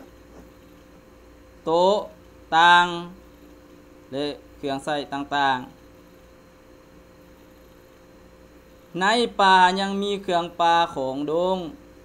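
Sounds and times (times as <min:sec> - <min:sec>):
electrical mains hum: 0:00.0 - 0:12.0
person speaking: 0:01.6 - 0:03.3, 0:04.1 - 0:05.9, 0:08.9 - 0:11.8.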